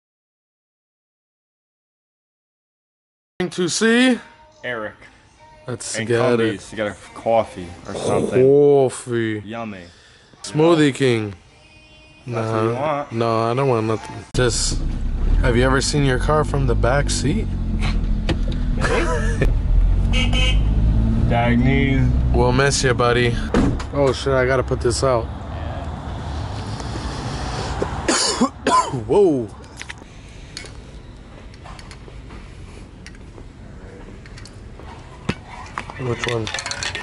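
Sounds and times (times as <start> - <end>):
car engine drone: 14.4 - 23.5
people laughing: 18.8 - 19.5
metal spray cans clinking: 35.9 - 37.0.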